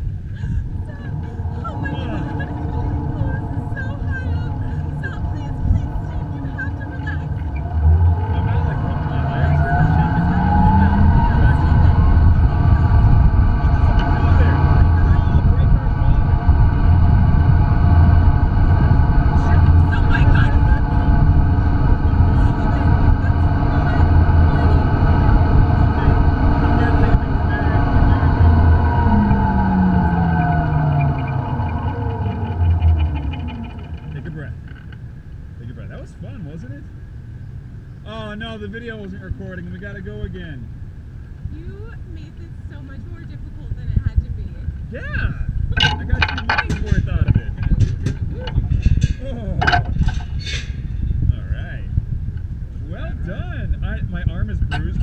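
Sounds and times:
zipline trolley whine on cable: 0:00.0 - 0:36.7, 0:37.9 - 0:51.4, 0:52.0 - 0:55.0
wind rumble on microphone: 0:00.0 - 0:55.0.

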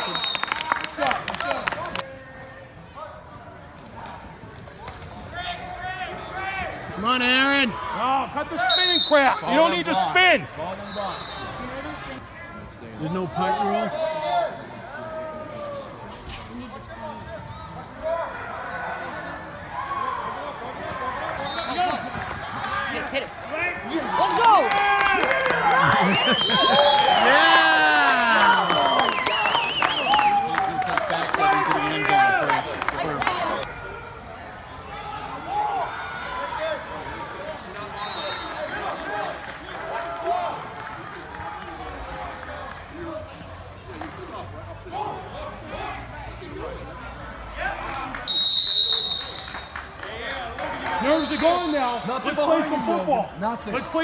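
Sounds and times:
people clapping: 0:00.0 - 0:02.1, 0:21.2 - 0:33.7, 0:38.9 - 0:43.2, 0:47.8 - 0:51.9
crowd shouting and cheering: 0:00.0 - 0:54.0
murmur of voices: 0:00.9 - 0:54.0.

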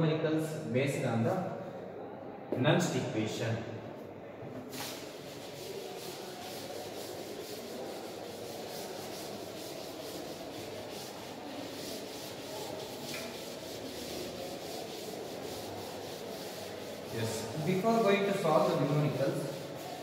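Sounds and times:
eraser rubbing on blackboard: 0:04.7 - 0:20.0.

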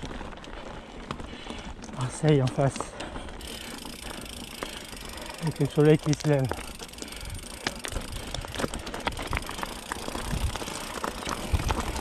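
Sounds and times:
bike rattling on stony trail: 0:00.0 - 0:12.0
bike freehub clicking: 0:00.1 - 0:12.0.

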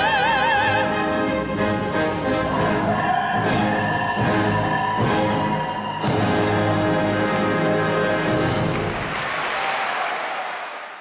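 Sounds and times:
large audience applauding: 0:07.9 - 0:11.0.

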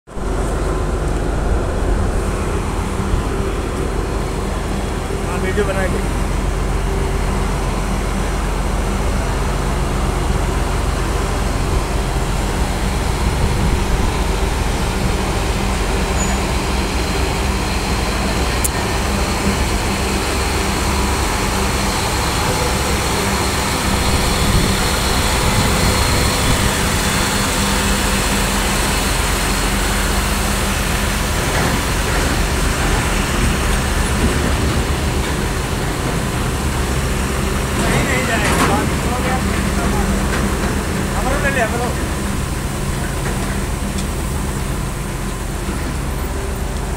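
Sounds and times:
heavy diesel truck engine: 0:00.1 - 0:46.9.

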